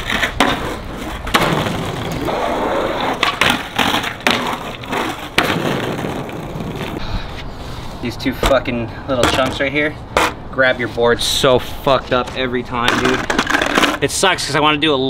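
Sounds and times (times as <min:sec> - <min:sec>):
skateboard popping and landing: 0:00.0 - 0:07.0, 0:12.8 - 0:14.0
skateboard scraping along ledge: 0:00.0 - 0:07.0, 0:12.1 - 0:14.1
skateboard wheels rolling on concrete: 0:00.0 - 0:15.0.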